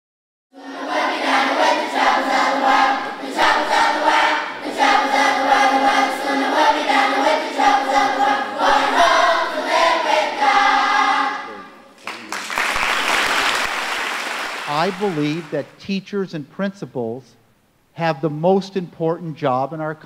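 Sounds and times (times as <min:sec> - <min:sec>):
children's choir singing: 0:00.5 - 0:11.8
applause: 0:12.0 - 0:15.6.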